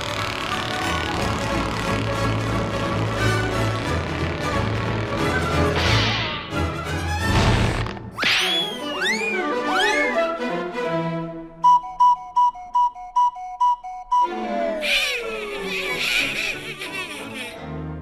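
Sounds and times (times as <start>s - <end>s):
orchestral cartoon music: 0.0s - 18.0s
whistle two-note call: 8.2s - 10.2s, 11.6s - 14.6s.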